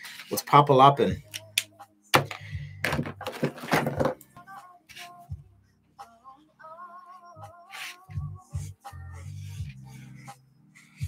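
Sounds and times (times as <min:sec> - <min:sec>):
soft background music: 0:00.0 - 0:11.0
knocks and thuds on a desk: 0:02.2 - 0:04.2.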